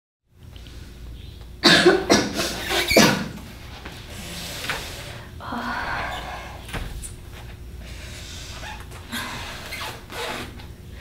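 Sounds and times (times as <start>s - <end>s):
person coughing hard: 1.6s - 3.4s.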